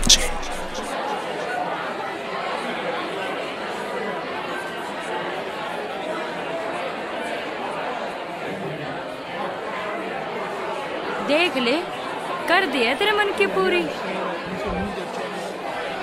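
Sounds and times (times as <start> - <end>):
babble of people talking: 0.0 - 16.0.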